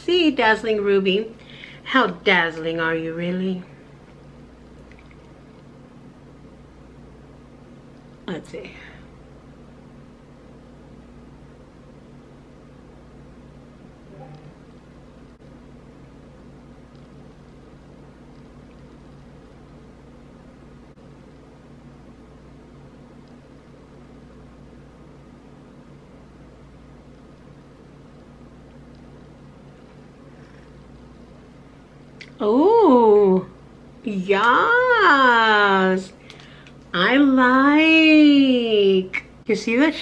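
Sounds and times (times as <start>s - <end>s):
low room tone hum: 0.0s - 40.0s.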